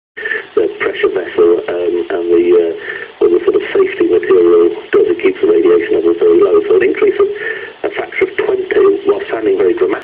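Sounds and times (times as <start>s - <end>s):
person talking over radio: 0.2s - 10.0s.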